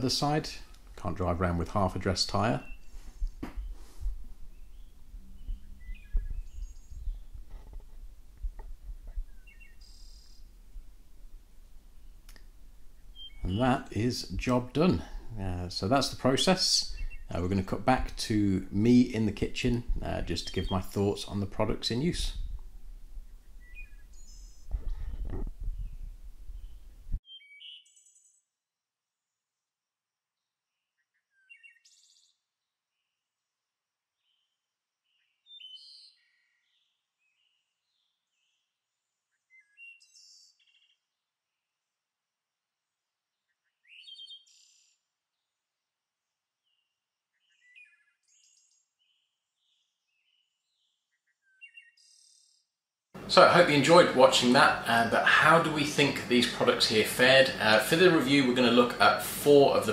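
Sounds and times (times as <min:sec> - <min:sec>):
outdoor background noise: 0:00.0 - 0:27.7
songbirds chirping: 0:00.0 - 0:28.4, 0:30.3 - 0:42.1, 0:42.8 - 0:59.9.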